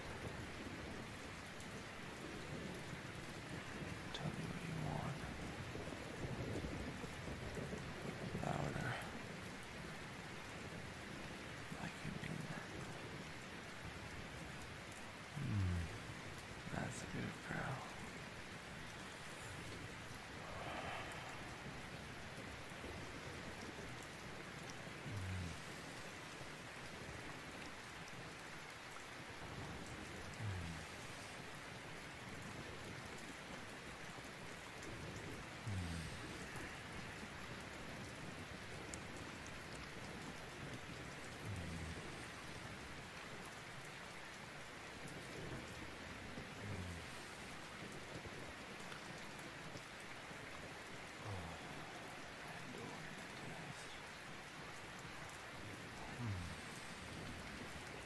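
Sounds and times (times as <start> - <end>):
steady rain patter: 0.0 - 58.0.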